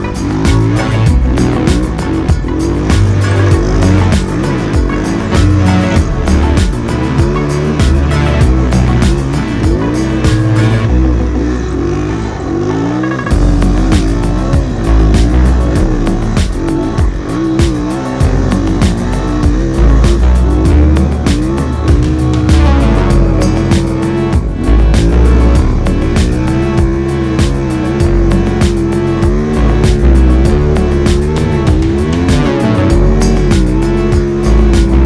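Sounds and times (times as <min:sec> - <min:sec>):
motorbike engine revving: 0:00.0 - 0:35.0
music with steady beat: 0:00.0 - 0:35.0.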